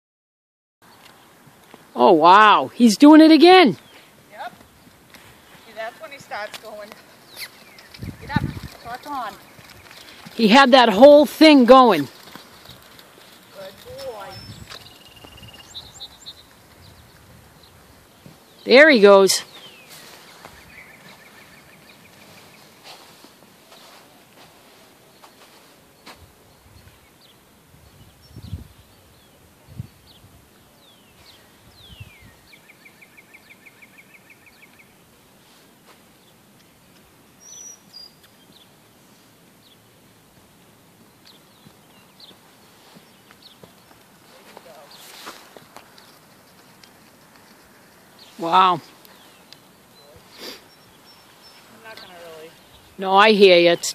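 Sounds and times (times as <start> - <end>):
small birds singing: 0.8 - 35.2, 36.1 - 53.9.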